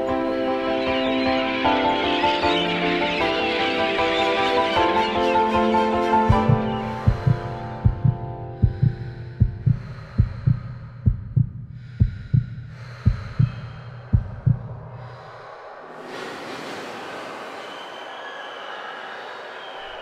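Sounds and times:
heartbeat thumps: 6.3 - 15.0
rushing noise: 14.2 - 20.0.

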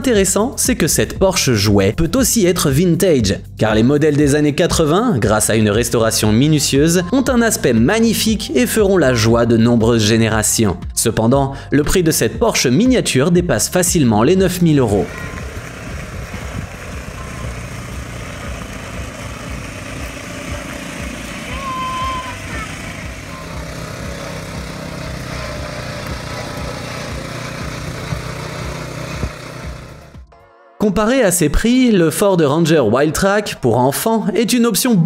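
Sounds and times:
small petrol engine running: 14.4 - 30.2.

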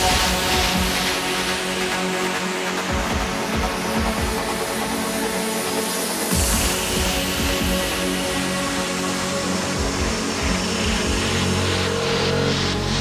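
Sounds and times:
rhythmic bass line: 0.0 - 2.2, 2.9 - 5.0, 6.3 - 13.0.

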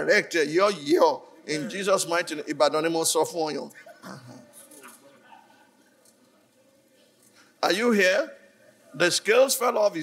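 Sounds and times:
low murmuring in a hall: 0.0 - 10.0.

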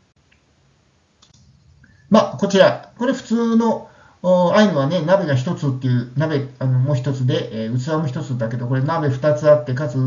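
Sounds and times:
faint clicks: 1.2 - 2.0.

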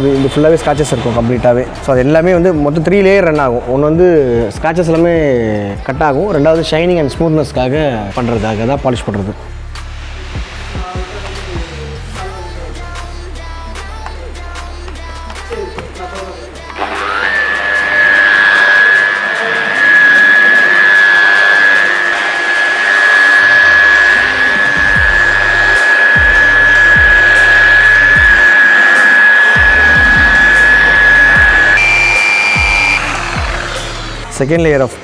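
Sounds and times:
background music: 0.0 - 35.0
electric polisher motor whine: 16.8 - 34.4.

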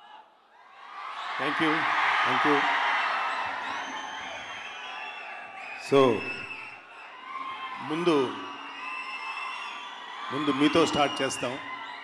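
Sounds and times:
large crowd cheering: 0.0 - 12.0.

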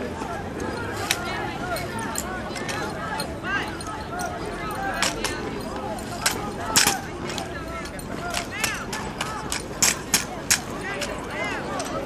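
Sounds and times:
murmur of spectators: 0.0 - 12.0
drill rifles clacking: 0.6 - 12.0.

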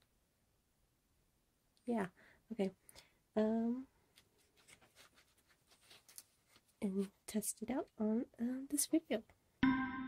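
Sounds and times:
rustling and light ticks: 4.0 - 8.0.

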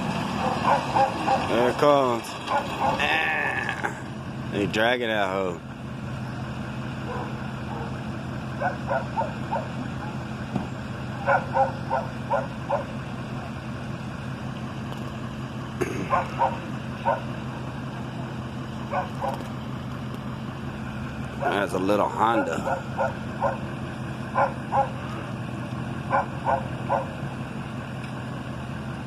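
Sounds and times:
truck engine idling: 0.0 - 29.0
dog barking: 0.4 - 1.5, 2.5 - 3.0, 7.0 - 8.0, 8.6 - 10.2, 11.2 - 13.0, 16.1 - 17.3, 18.9 - 19.4, 22.6 - 23.7, 24.3 - 25.0, 26.1 - 27.2.

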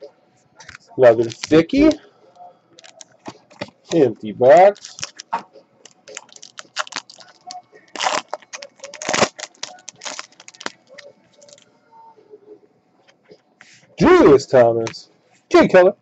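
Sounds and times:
soft handling of cards: 0.4 - 2.0, 2.8 - 11.7
foil wrapper crinkling and tearing: 1.2 - 1.9, 2.8 - 4.0, 4.6 - 11.6.

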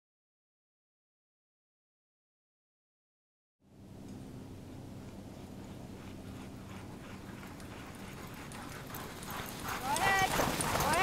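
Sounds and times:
patter of dog paws on snow: 5.0 - 11.0.

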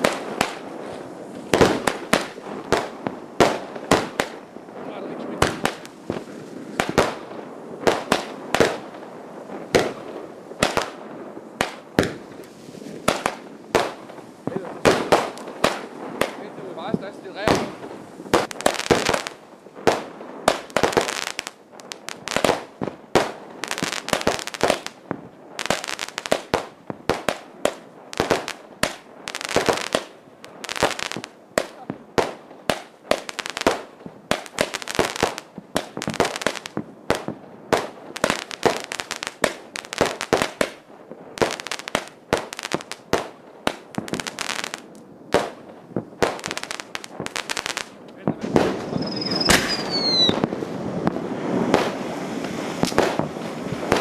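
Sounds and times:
fireworks bangs and crackling: 0.0 - 54.0
falling whistle: 48.9 - 50.4.

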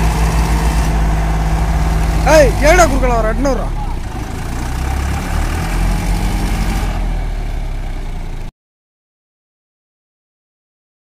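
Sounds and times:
tractor diesel engines under load: 0.0 - 8.5.

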